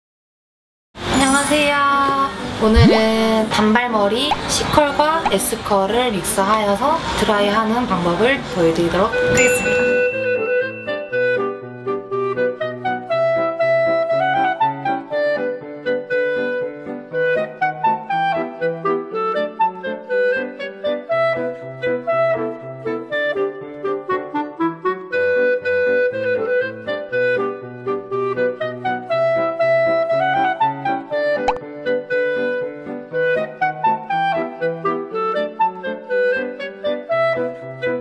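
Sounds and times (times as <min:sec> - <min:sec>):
woodwind melody: 0:09.2 - 0:38.0.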